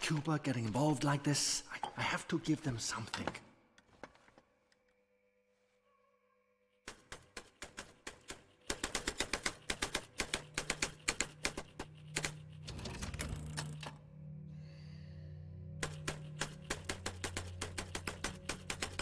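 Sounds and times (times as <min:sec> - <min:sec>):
low music drone: 0:10.1 - 0:19.0.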